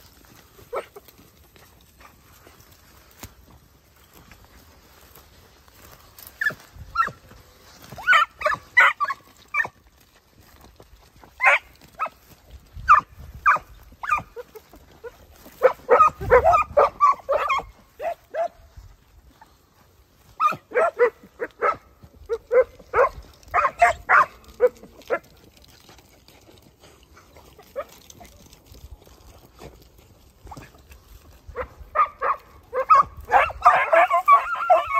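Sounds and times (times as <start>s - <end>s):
hounds yelping and barking: 0.2s - 3.1s, 4.2s - 34.9s.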